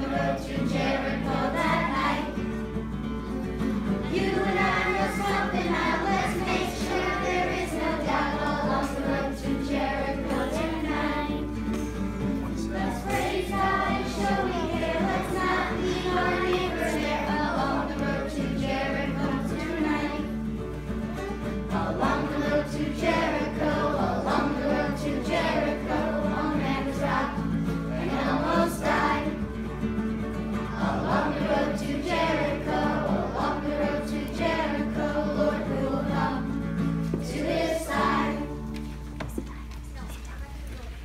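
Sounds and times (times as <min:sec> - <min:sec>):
children's choir singing: 0:00.0 - 0:39.4
acoustic guitar: 0:00.0 - 0:41.0.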